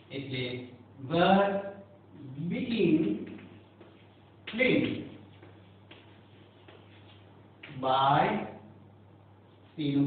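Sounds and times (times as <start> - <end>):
low electrical hum: 0.0 - 10.0
chalk tapping and scratching: 3.0 - 7.3.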